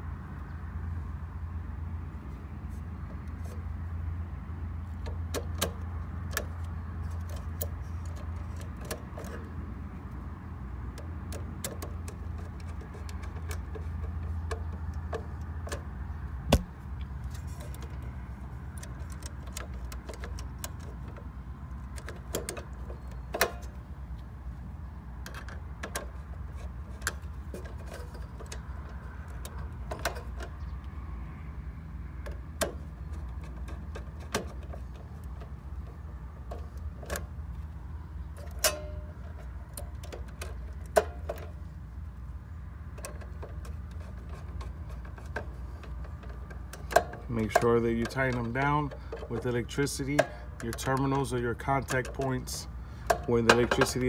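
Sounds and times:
screwdriver clicking on metal terminals: 17.3s - 23.8s, 42.9s - 54.0s.

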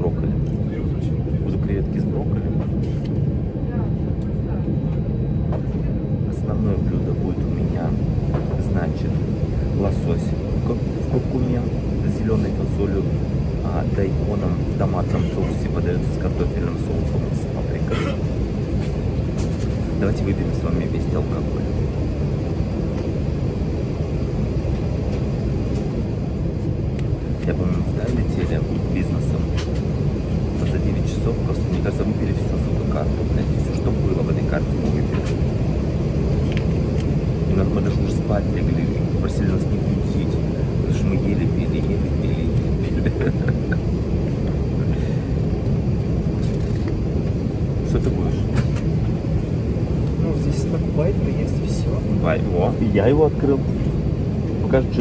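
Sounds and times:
airliner cabin drone: 0.0s - 55.0s.

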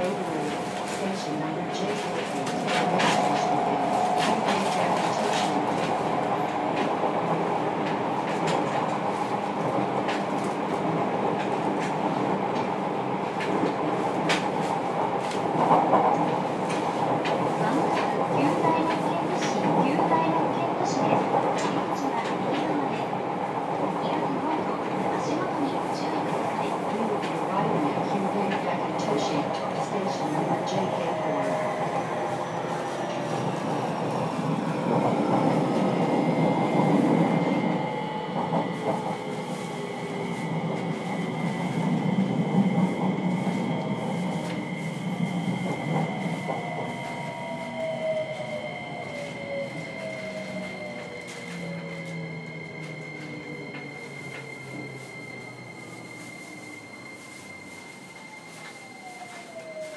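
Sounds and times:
train rumble: 0.0s - 59.9s.

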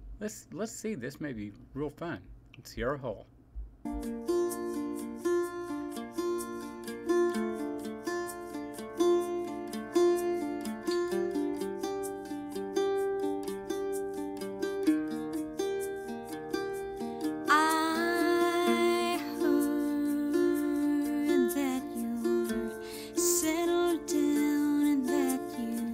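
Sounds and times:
guitar: 3.8s - 25.9s
octave mandolin picking: 3.9s - 25.9s
woman singing: 17.4s - 25.9s.

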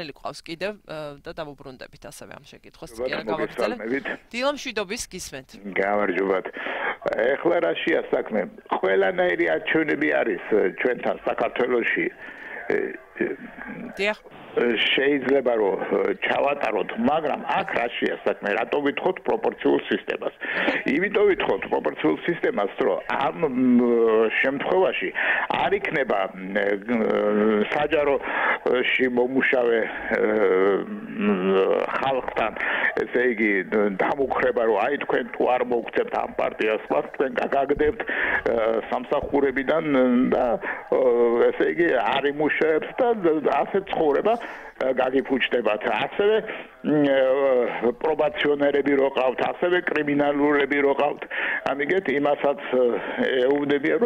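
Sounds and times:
person talking: 0.0s - 7.2s, 13.8s - 14.2s, 20.4s - 21.7s.

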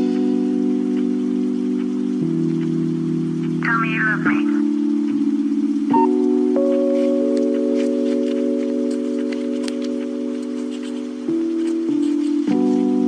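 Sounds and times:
soft keyboard chords: 0.0s - 13.0s
faint light ticks: 0.9s - 3.6s, 4.6s - 12.7s.

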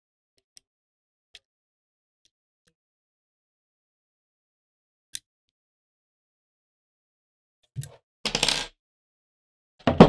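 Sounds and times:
hex key on wooden tabletop: 7.8s - 8.8s.

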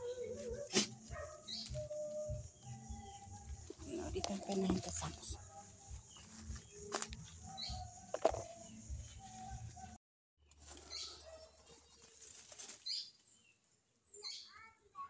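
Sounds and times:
bird chirps: 1.3s - 5.1s.

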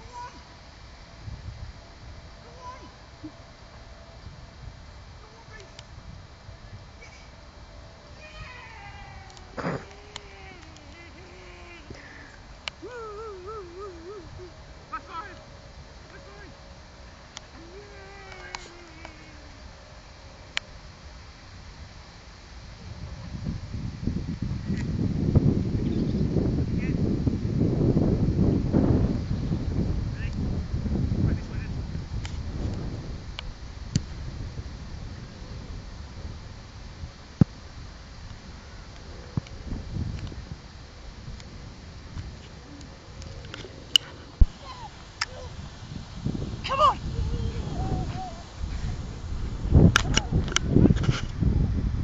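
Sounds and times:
wind buffeting microphone: 1.1s - 3.2s, 4.2s - 7.5s, 22.7s - 52.0s
small child crying: 8.2s - 12.1s, 44.6s - 45.5s, 46.6s - 48.5s.

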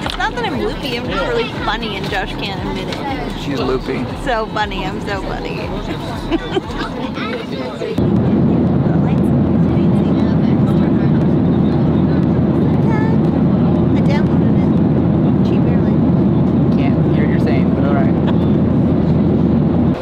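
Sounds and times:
jet airliner cabin noise: 0.0s - 20.0s.

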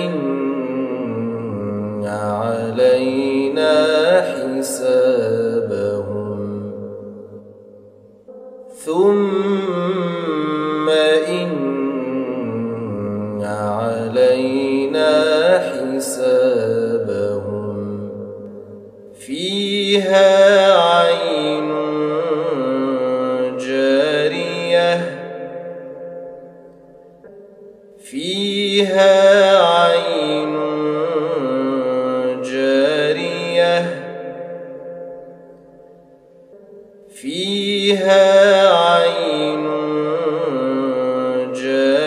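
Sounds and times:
person chanting recitation: 0.0s - 7.4s, 8.3s - 26.8s, 28.1s - 35.8s, 36.5s - 42.0s.

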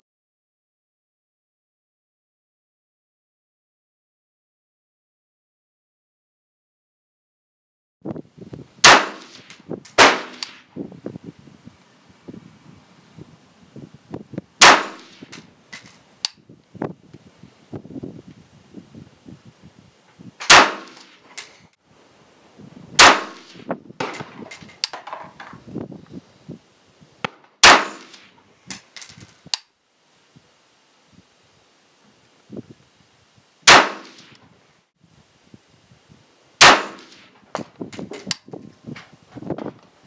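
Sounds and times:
rifle shots: 8.8s - 10.7s, 14.6s - 15.4s, 20.4s - 21.2s, 23.0s - 24.3s, 27.6s - 28.3s, 33.7s - 34.4s, 36.6s - 37.3s
metallic clinks and clicks: 15.3s - 16.1s, 28.7s - 29.6s.

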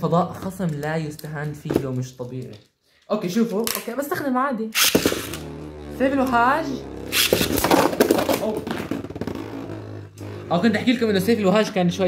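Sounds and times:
spinning top humming: 5.0s - 11.7s.

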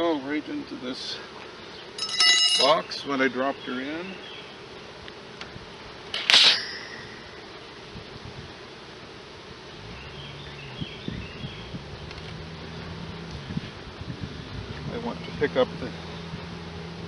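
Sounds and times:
low steady buzz: 0.0s - 17.0s
short loud hiss: 6.1s - 7.9s.

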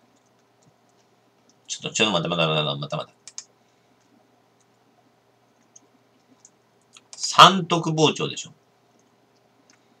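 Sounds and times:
computer mouse clicks: 0.1s - 1.7s, 3.2s - 4.8s, 5.5s - 7.2s, 8.9s - 9.9s.

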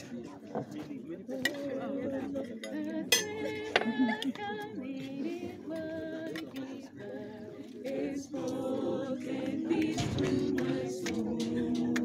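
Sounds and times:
group singing unaccompanied: 1.3s - 12.0s.

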